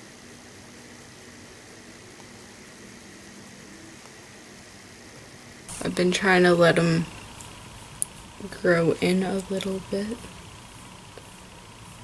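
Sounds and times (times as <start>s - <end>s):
faint hum: 0.0s - 12.0s
room tone hiss: 0.0s - 12.0s.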